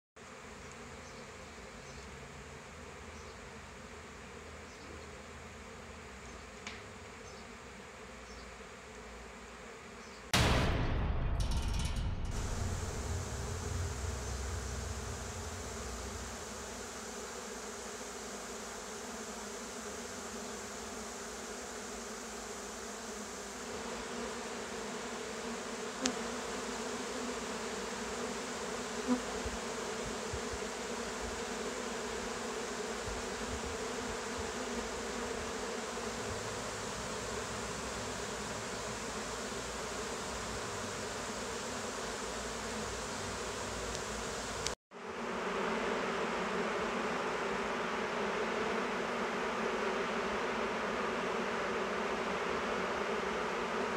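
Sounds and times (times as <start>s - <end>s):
swarm of honeybees buzzing: 0.2s - 10.3s, 15.1s - 53.9s.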